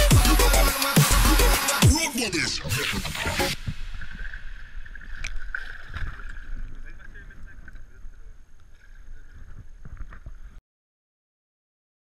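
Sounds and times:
water sloshing and splashing: 0:02.6 - 0:10.6.

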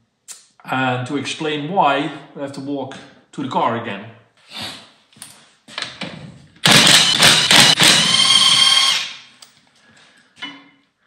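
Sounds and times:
cordless power tool spinning: 0:06.6 - 0:09.2.

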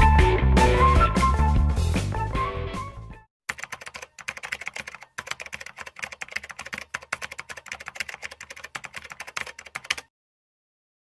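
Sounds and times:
rapid keyboard typing clicks: 0:03.5 - 0:10.1.

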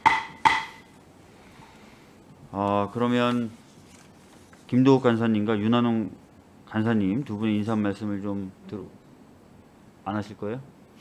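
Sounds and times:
wooden gavel strikes: 0:00.0 - 0:00.9.

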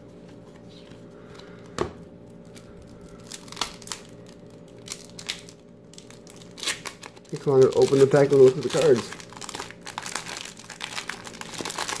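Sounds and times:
wax paper wrapper tearing: 0:02.4 - 0:12.0.

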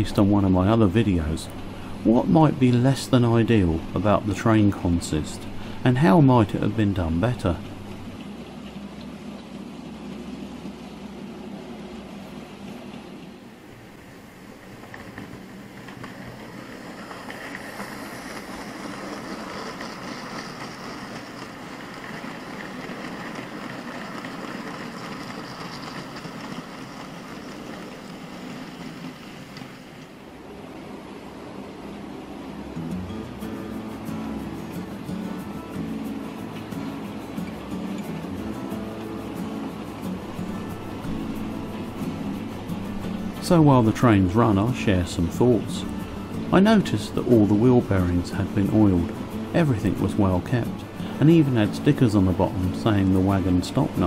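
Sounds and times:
model train wheels whirring on rails: 0:13.2 - 0:30.4, 0:33.6 - 0:54.0
background music: 0:32.6 - 0:54.0.

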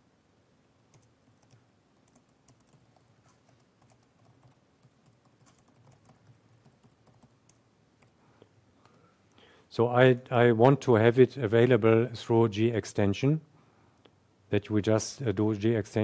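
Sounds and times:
typing on computer keyboard: 0:00.9 - 0:08.2.

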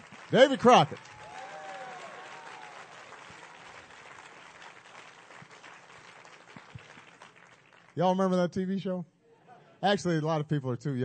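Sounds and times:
audience clapping: 0:00.0 - 0:08.4.

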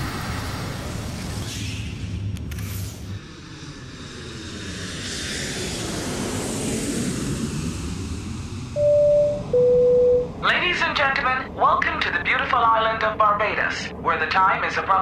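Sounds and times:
airliner engine noise: 0:00.0 - 0:15.0.

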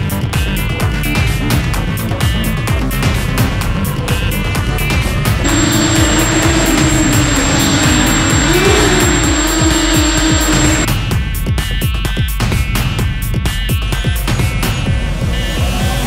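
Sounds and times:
background music with a beat: 0:00.0 - 0:16.0
quadcopter propellers buzzing: 0:05.4 - 0:10.9.

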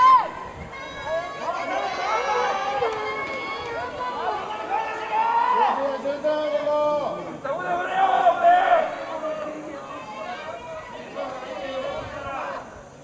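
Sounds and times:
players shouting and calling out: 0:00.0 - 0:13.0.

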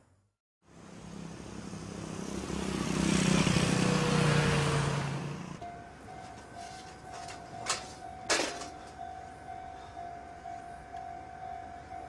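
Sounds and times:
vehicle driving past: 0:00.8 - 0:06.2.

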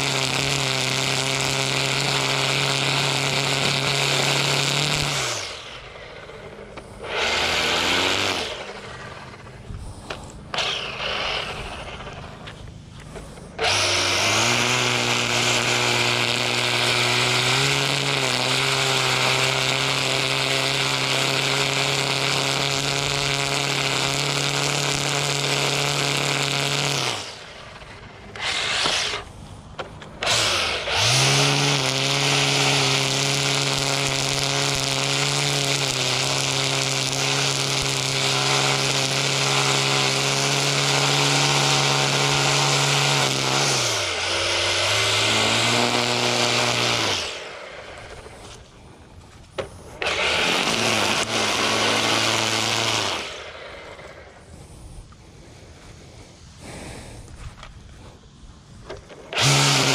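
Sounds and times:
string trimmer motor whine: 0:00.0 - 0:59.9
trimmer line cutting grass: 0:00.0 - 0:59.9.

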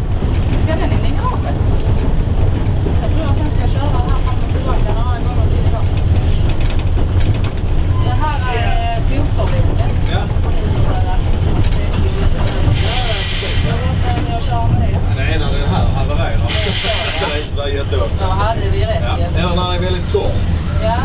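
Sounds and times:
locomotive cab rumble: 0:00.0 - 0:21.0
people talking: 0:00.6 - 0:02.1, 0:02.8 - 0:06.7, 0:07.9 - 0:21.0.

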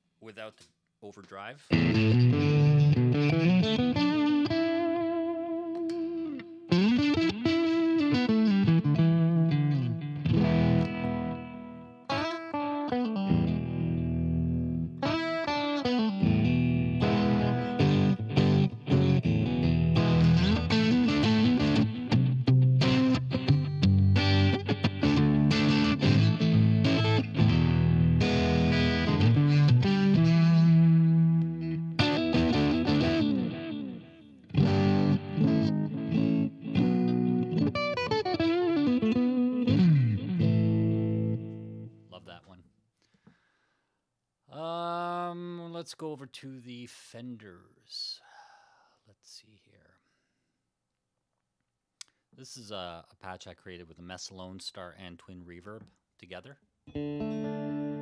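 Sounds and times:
electric guitar playing: 0:01.7 - 0:42.1, 0:56.9 - 0:58.0.

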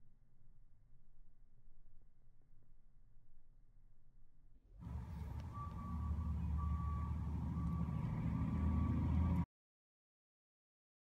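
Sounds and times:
high tone: 0:04.8 - 0:09.4
truck engine rumbling: 0:04.8 - 0:09.5.

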